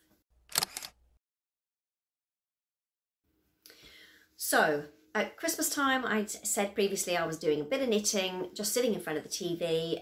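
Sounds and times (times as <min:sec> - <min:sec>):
quick puffs of breath: 0:03.7 - 0:04.4.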